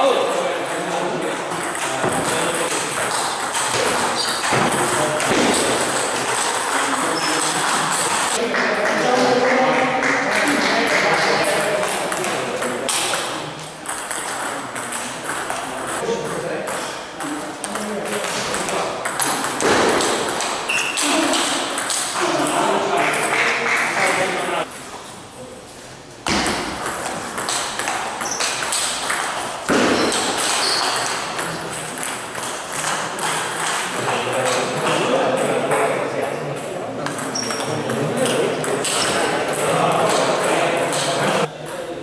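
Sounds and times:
voices talking in a hall: 0:00.0 - 0:42.0.

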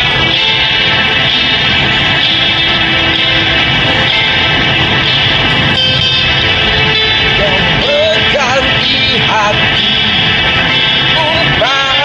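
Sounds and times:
karaoke backing track: 0:00.0 - 0:12.0.

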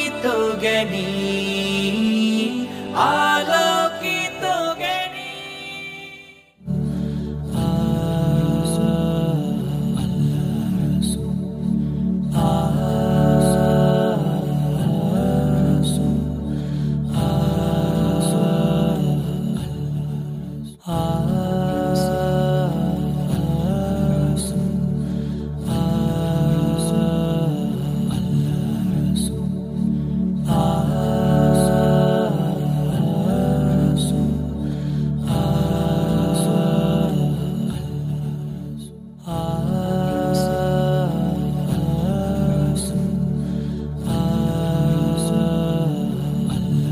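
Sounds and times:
wordless vocal chanting: 0:00.0 - 0:46.9.

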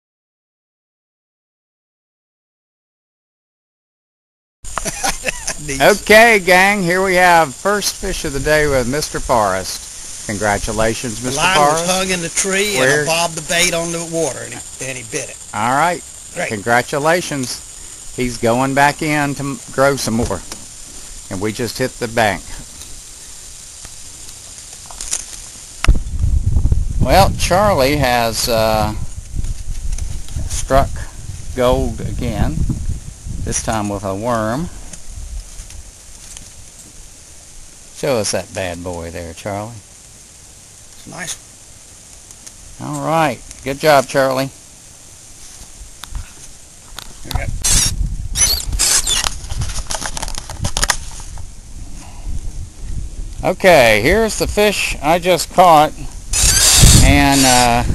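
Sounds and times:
steady hiss: 0:04.6 - 0:57.9
microphone handling rumble: 0:25.8 - 0:34.0, 0:47.0 - 0:57.9
camera handling clicks and rustles: 0:48.8 - 0:51.4.

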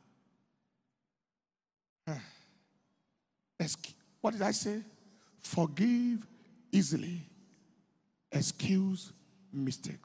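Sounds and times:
man saying uh into microphone: 0:03.6 - 0:07.4, 0:08.3 - 0:10.0.

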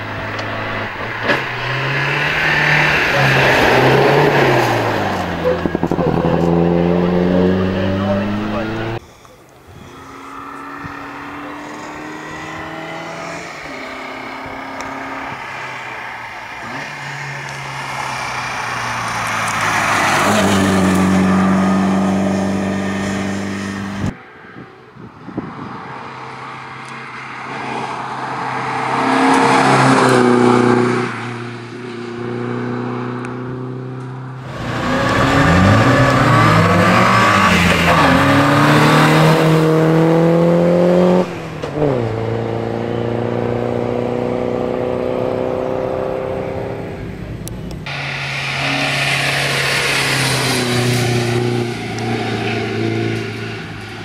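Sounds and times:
racing car engine accelerating: 0:00.0 - 0:09.0, 0:27.6 - 0:53.8.

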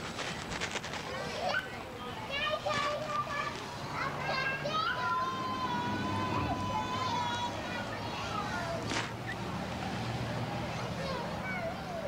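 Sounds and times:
children playing and squealing: 0:01.0 - 0:12.0.

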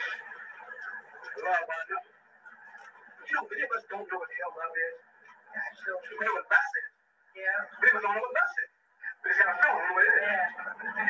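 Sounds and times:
faint recording hum: 0:00.0 - 0:11.0
man speaking on old recording: 0:03.2 - 0:05.2.

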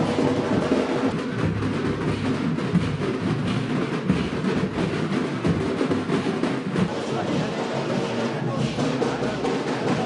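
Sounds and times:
percussion-heavy music: 0:00.0 - 0:10.0.

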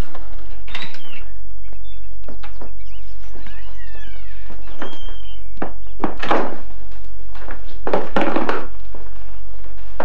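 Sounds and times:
high falling squeaks: 0:00.5 - 0:06.0
thuds: 0:04.5 - 0:10.0
door: 0:04.6 - 0:06.6.

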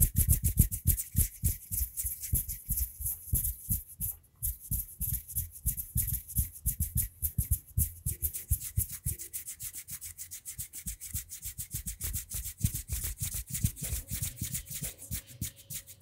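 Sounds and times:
hands rubbing together: 0:00.0 - 0:16.0.

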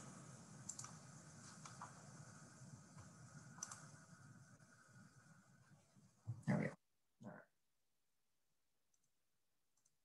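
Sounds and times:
faint computer mouse clicks: 0:00.6 - 0:01.9, 0:03.0 - 0:03.9.

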